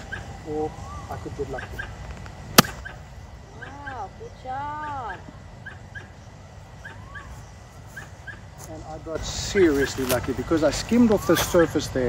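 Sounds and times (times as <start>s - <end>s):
high bird chirps: 5.6s - 8.6s.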